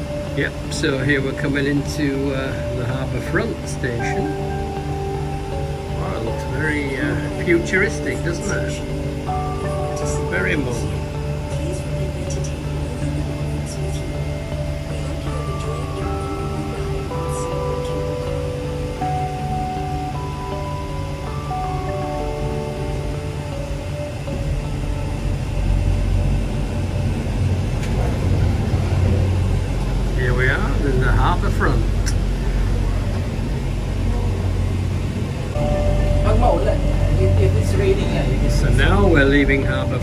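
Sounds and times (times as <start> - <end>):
cable car gondola rumble: 0.0 - 40.0
simple melody of held notes: 0.0 - 40.0.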